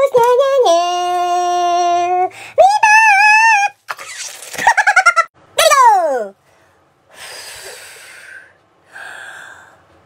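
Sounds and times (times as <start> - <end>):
man breathing forcefully: 7.1 - 9.9.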